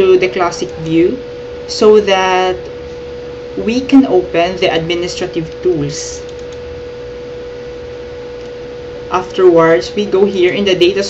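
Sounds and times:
low hiss and hum: 0.0 - 11.0
steady electrical whine: 0.0 - 11.0.

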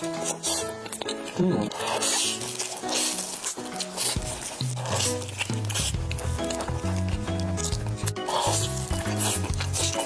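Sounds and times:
wet sticky chewing sounds: 0.0 - 10.0
background music with bass line: 4.1 - 10.0.

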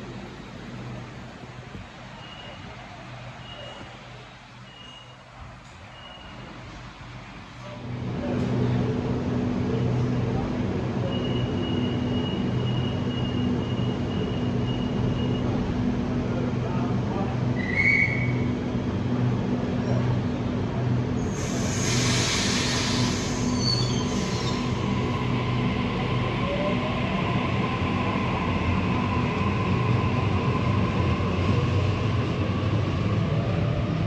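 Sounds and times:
electric train humming: 20.7 - 34.0.

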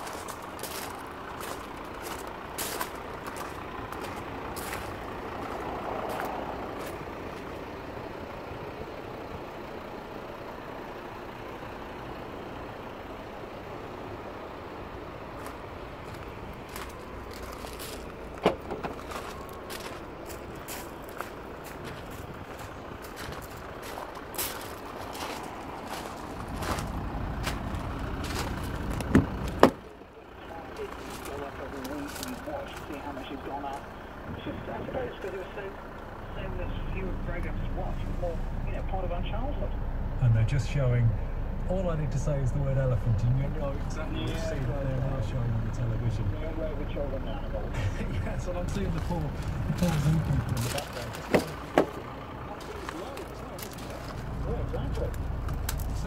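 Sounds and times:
footsteps on gravel: 0.0 - 7.6, 15.4 - 29.8, 30.8 - 33.9, 48.7 - 56.0
steady background rumble: 0.0 - 56.0.

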